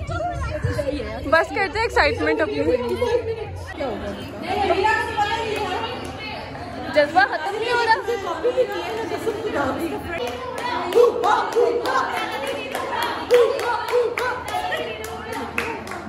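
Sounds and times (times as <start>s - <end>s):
young women chatting: 0.0s - 16.0s.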